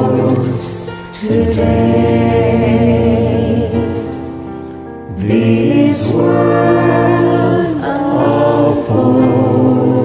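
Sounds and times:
group singing a hymn: 0.0s - 10.0s.

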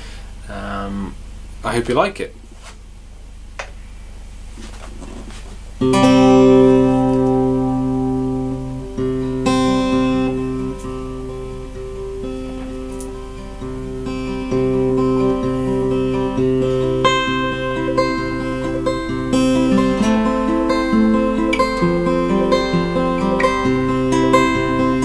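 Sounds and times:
acoustic guitar picking: 4.6s - 25.0s.

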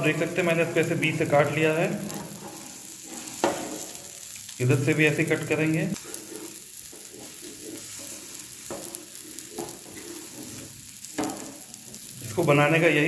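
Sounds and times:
omelette sizzling in oil: 0.0s - 13.0s
metal spatula scraping pan: 2.1s - 4.0s, 6.0s - 12.1s.

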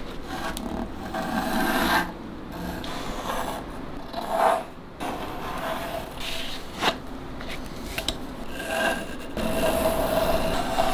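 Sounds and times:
pencil scratching on wooden board: 0.2s - 7.0s, 8.5s - 10.9s.

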